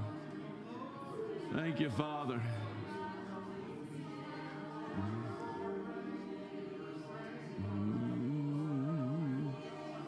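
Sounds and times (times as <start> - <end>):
soft singing voices: 0.0 - 10.0
sustained worship chords: 4.9 - 10.0.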